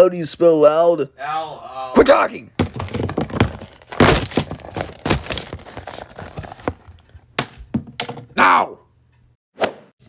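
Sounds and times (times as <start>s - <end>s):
knocks thuds and crackles: 2.6s - 8.2s.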